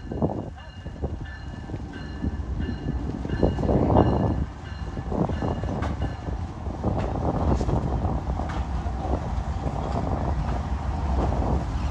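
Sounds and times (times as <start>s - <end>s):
locomotive bell ringing: 0.0s - 6.4s
diesel locomotive engine rumble: 0.0s - 11.9s.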